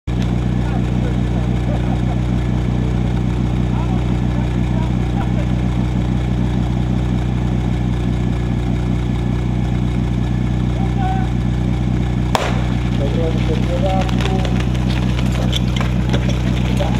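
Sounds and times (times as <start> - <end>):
small pump engine running fast: 0.1 - 16.9.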